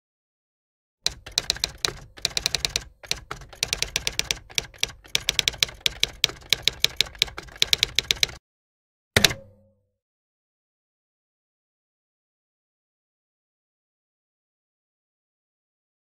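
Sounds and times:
typewriter keystrokes: 1.1s - 8.4s, 9.2s - 9.6s.

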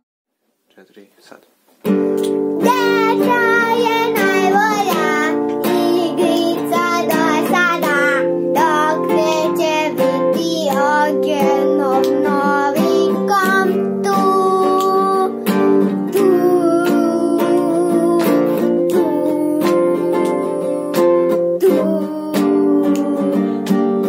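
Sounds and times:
strummed acoustic guitar: 1.8s - 24.0s
girl singing: 2.6s - 24.0s.

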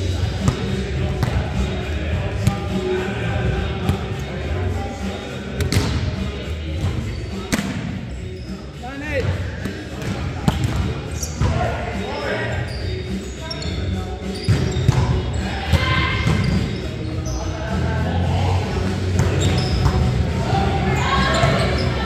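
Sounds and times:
hands hitting volleyball: 5.6s - 6.0s
players calling out: 8.1s - 22.0s.

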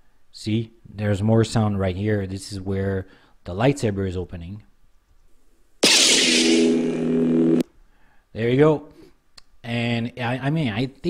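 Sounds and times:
lightsaber ignition hiss and hum: 5.8s - 7.6s.

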